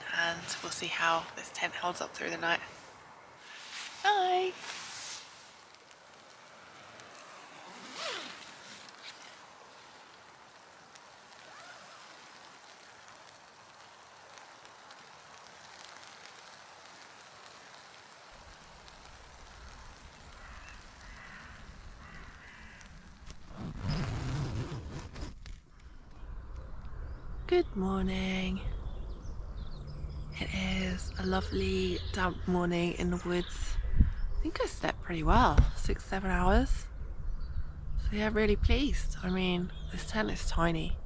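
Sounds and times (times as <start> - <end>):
rustling: 2.7 - 26.2.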